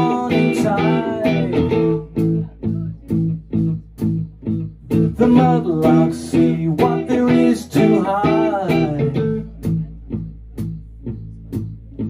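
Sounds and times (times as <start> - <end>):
electric guitars and bass chords: 0.0 - 12.0.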